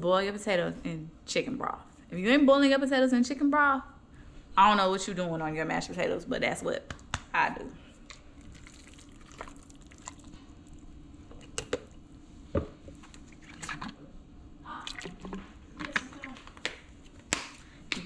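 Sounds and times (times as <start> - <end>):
wet squishing of mashed potatoes: 7.9 - 12.0, 12.9 - 14.0.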